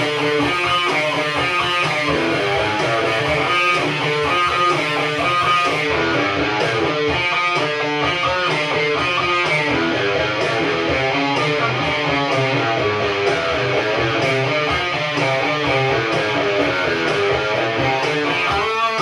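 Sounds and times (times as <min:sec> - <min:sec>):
electric guitar rock instrumental: 0:00.0 - 0:19.0.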